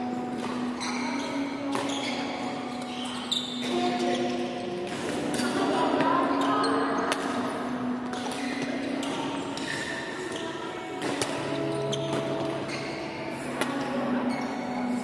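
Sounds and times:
echoing voices: 0:00.0 - 0:15.0
racket hitting shuttlecock: 0:01.7 - 0:01.9, 0:07.1 - 0:09.2, 0:11.0 - 0:12.6.

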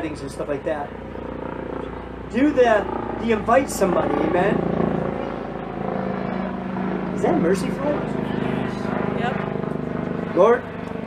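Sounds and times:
motor running hum: 0:00.0 - 0:11.0.

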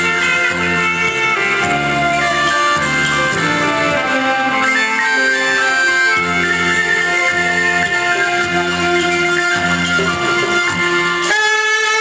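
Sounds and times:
low sustained saxophone part: 0:00.0 - 0:12.0
saxophones playing slow melody: 0:00.0 - 0:12.0.

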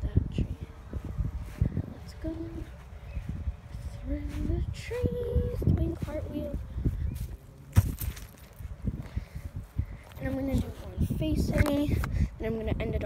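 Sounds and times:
background voices talking: 0:00.0 - 0:07.5, 0:08.6 - 0:13.0
footsteps thumping: 0:07.2 - 0:09.2.

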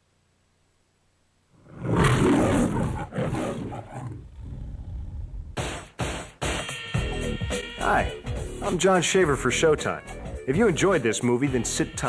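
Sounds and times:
lion roar: 0:01.6 - 0:05.6.

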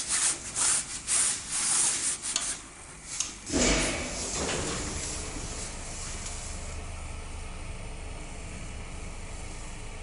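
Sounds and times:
steady hum: 0:00.0 - 0:10.0
lift doors rumbling slide: 0:03.5 - 0:07.1.

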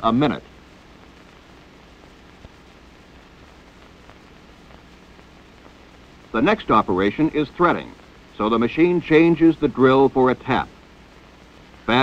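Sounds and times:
film soundtrack hiss and crackle: 0:00.0 - 0:12.0.

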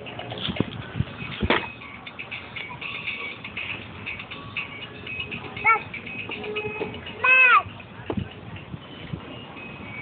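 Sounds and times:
high electronic toy tune: 0:01.8 - 0:07.8.

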